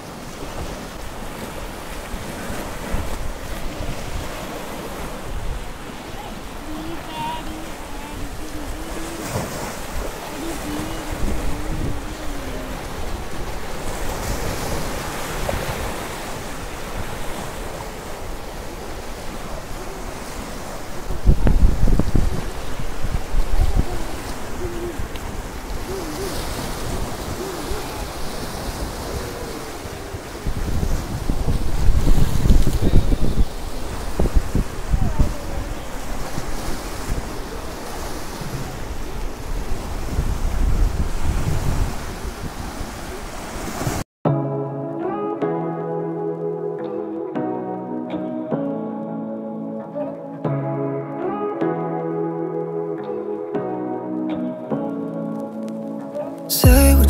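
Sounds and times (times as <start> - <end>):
sea surf breaking over rocks: 0.0 - 44.0
wind buffeting microphone: 0.0 - 44.0.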